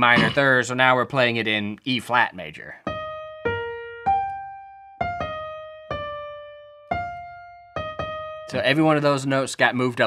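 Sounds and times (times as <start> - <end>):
piano keyboard melody: 2.8 - 9.3.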